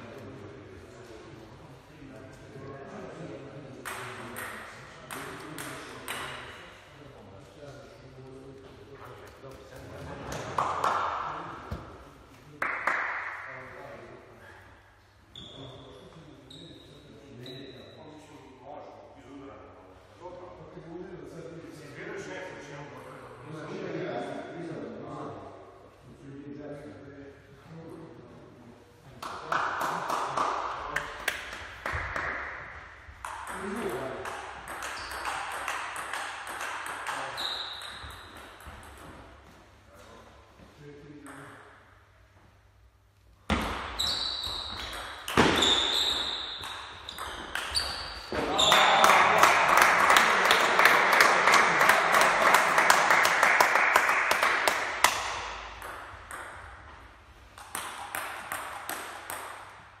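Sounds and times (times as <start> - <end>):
shoes squeaking on wooden floor: 44.0 - 48.8.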